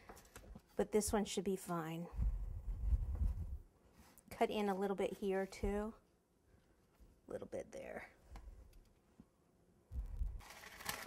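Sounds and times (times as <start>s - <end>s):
paper rustling and crinkling: 10.4s - 11.0s.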